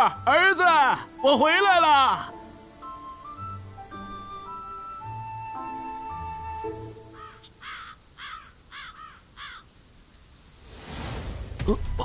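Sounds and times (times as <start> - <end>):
crow cawing: 7.1 - 9.8
rising rush of noise: 10.5 - 12.0.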